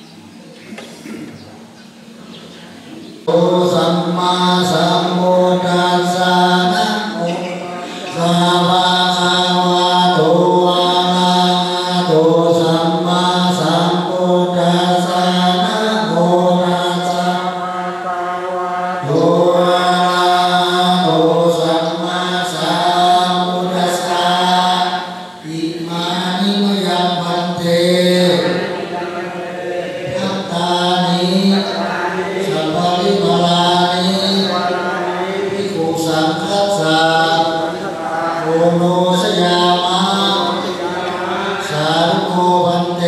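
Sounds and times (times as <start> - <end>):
ceremonial chanting: 0.0 - 43.0.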